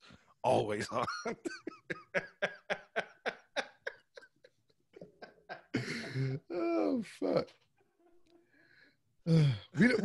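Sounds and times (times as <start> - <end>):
man laughing hard: 1.0 - 6.8.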